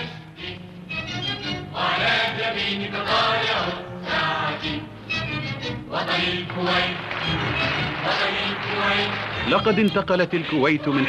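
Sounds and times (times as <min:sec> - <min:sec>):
choir singing with instruments: 0:00.0 - 0:11.0.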